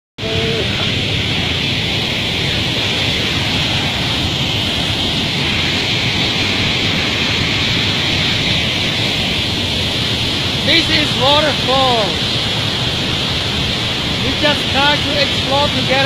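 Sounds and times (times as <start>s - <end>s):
waterfall rushing water: 0.2s - 16.0s.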